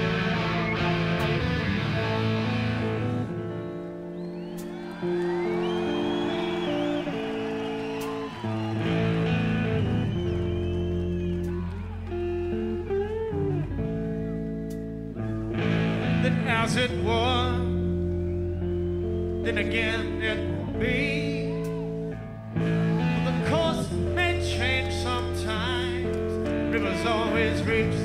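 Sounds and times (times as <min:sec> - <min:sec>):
bass line: 0:00.0 - 0:28.0
electric guitar bending notes: 0:00.0 - 0:28.0.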